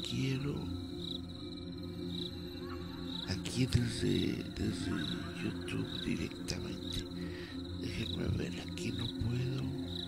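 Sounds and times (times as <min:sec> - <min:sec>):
low steady musical drone: 0:00.0 - 0:10.0.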